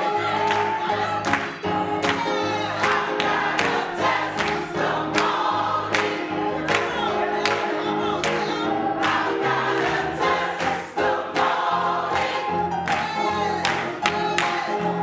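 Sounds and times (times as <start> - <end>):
gospel choir singing: 0.0 - 15.0
keyboard accompaniment: 0.0 - 15.0.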